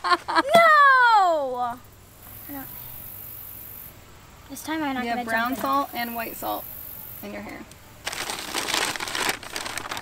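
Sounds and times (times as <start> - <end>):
paper bag crinkling: 8.0 - 10.0
plastic bottle pulled out: 8.0 - 10.0.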